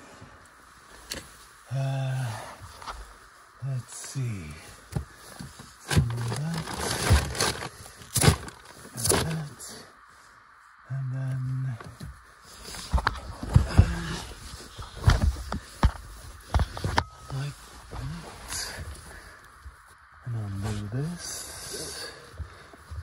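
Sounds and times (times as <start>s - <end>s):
man humming: 1.7s - 2.5s.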